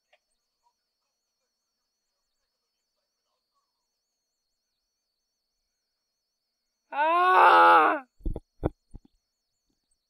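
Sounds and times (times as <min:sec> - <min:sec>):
person groaning: 0:06.9 - 0:08.0.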